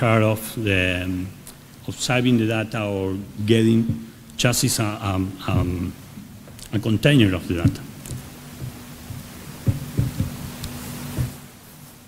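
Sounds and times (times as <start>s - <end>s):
steady low hum: 0.0s - 12.0s
soft low thuds: 3.7s - 4.2s, 7.4s - 11.5s.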